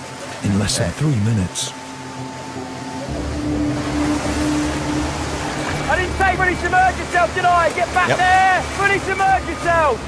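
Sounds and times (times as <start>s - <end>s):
steady low hum: 0.0s - 8.0s
churning rushing water: 0.0s - 10.0s.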